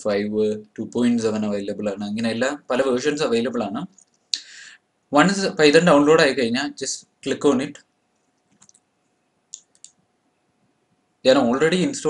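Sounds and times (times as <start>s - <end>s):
computer mouse clicks: 8.2s - 8.9s, 9.5s - 10.0s.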